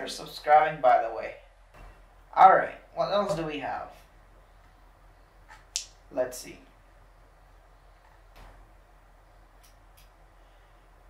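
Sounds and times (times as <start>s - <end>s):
sharp click: 9.6s - 10.2s.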